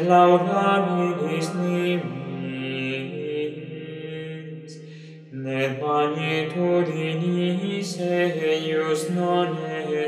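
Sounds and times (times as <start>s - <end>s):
unaccompanied plainsong chant: 0.0s - 10.0s.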